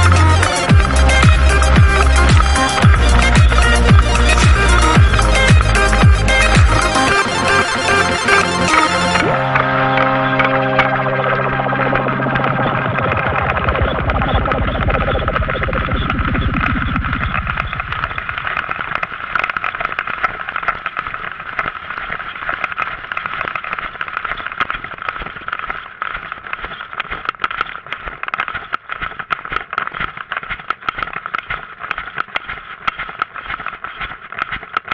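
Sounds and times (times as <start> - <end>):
music: 0.0 - 18.2
rattling crackling camera noise: 0.0 - 34.9.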